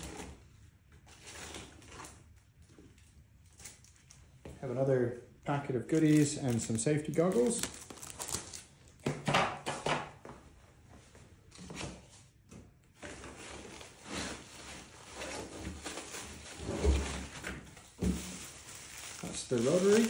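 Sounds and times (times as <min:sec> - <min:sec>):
rummaging through foam packing: 0:00.0 - 0:04.4, 0:05.8 - 0:08.7, 0:13.0 - 0:20.0.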